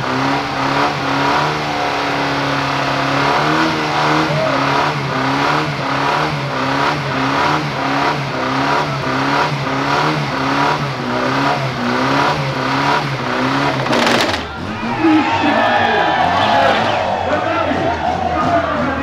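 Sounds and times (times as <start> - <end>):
car engine at high revs: 0.0 - 19.0.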